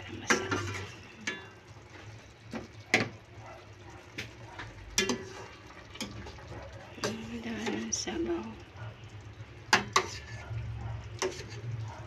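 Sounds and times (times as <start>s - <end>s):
utensil clinking on pan and bowl: 0.0s - 1.6s, 4.2s - 8.0s, 9.7s - 12.0s.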